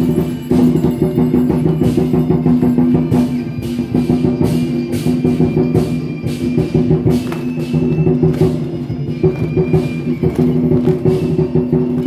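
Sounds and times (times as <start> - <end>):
fast loud war drums: 5.1 - 12.0.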